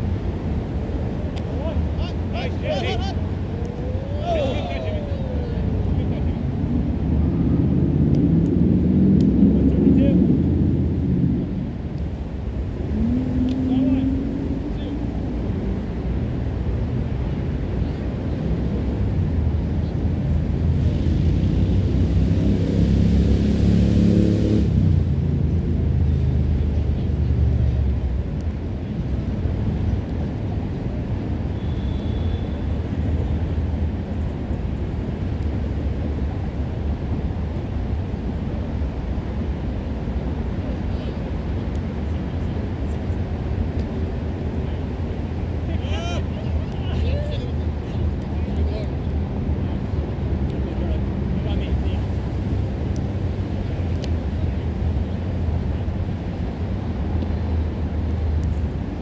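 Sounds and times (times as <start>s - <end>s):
steady low rumble: 0.0s - 59.0s.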